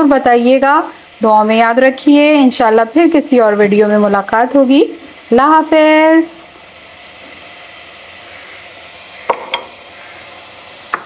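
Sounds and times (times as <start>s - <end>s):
food frying sizzle: 0.0s - 11.0s.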